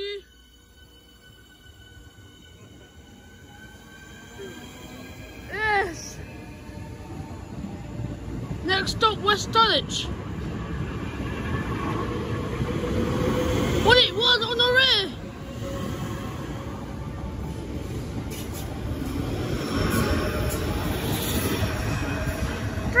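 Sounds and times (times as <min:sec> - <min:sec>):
train wheels rumbling on rails: 0:00.0 - 0:23.0.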